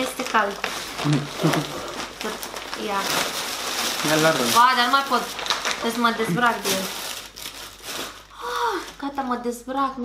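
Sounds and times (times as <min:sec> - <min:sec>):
plastic bag crinkling: 0:00.0 - 0:09.6.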